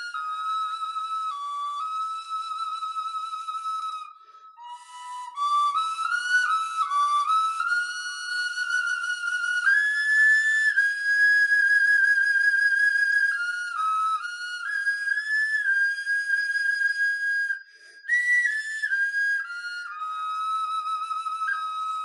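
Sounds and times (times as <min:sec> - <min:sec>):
small wind instrument melody: 0:00.0 - 0:22.0.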